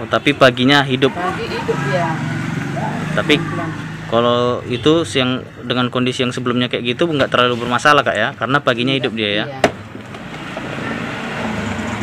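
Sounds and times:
motor vehicle passing: 0.0 - 8.0, 9.0 - 12.0.

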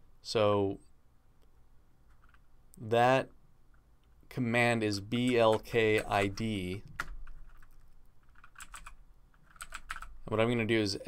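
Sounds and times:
computer keyboard typing: 2.1 - 2.4, 5.2 - 10.1.

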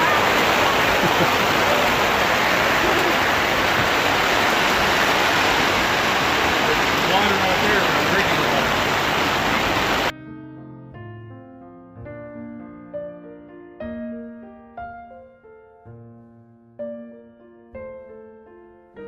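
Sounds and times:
heavy rain pouring: 0.0 - 10.1.

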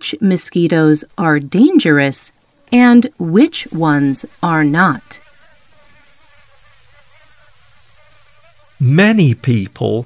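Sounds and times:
mosquito buzzing whine: 1.0 - 10.0.

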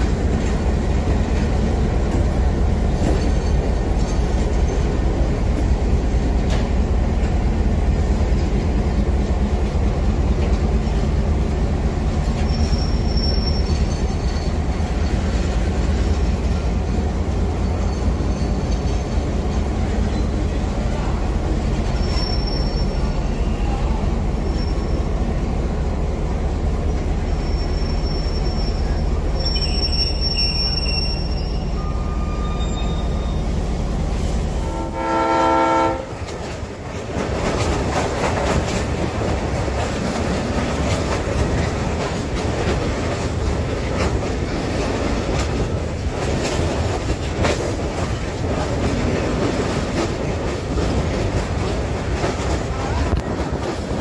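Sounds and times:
diesel locomotive drone: 0.0 - 54.0
train wheels squealing: 3.0 - 4.9, 12.2 - 20.6, 21.8 - 25.4, 26.8 - 33.9
train horn blast: 34.5 - 36.4.

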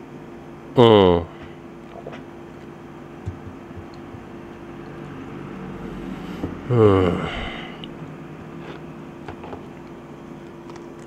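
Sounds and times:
air conditioner hiss and hum: 0.0 - 11.0.

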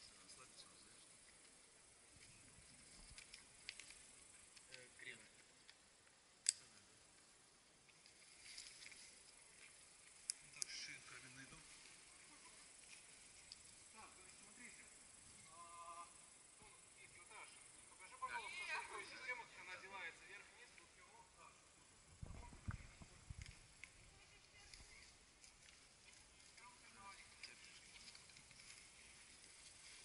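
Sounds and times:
rope and carabiner clicking: 2.2 - 6.8, 10.2 - 10.9, 27.3 - 29.0.

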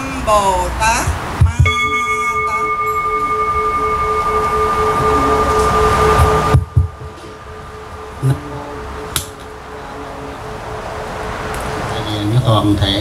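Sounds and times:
bowl bell ringing: 1.6 - 11.4.

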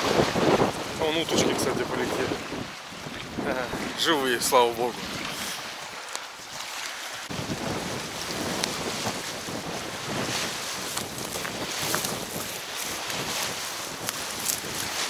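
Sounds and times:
waves washing against bank: 0.0 - 15.0
wind buffeting microphone: 0.0 - 15.0.

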